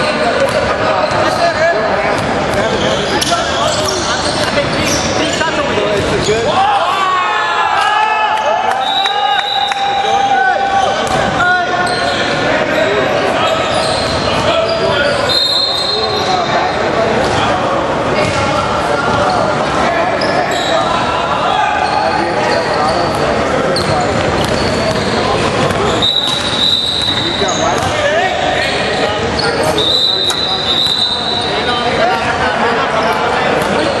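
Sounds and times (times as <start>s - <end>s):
players' voices echoing: 0.0s - 34.0s.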